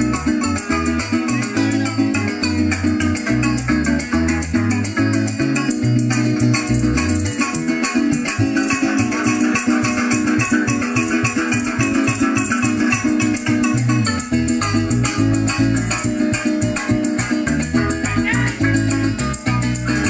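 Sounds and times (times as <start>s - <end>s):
cuatro strumming: 0.0s - 20.0s
electric bass: 0.0s - 20.0s
maracas: 0.0s - 20.0s.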